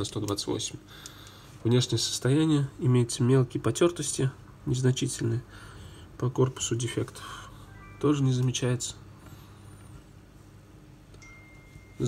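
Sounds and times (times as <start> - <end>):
low steady hum: 0.0 - 12.0
high-pitched steady tone: 7.5 - 9.1, 11.2 - 12.0.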